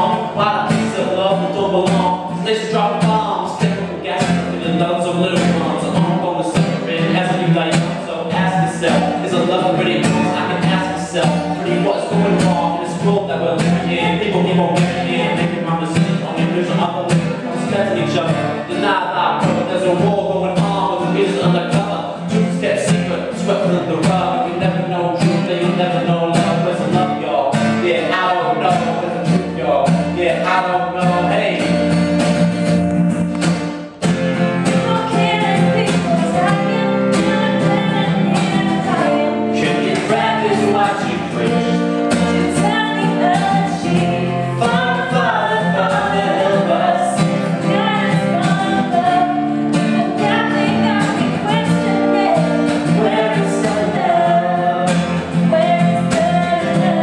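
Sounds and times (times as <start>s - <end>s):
man and woman singing: 0.0s - 32.4s, 34.6s - 57.0s
acoustic guitar strumming: 0.0s - 57.0s.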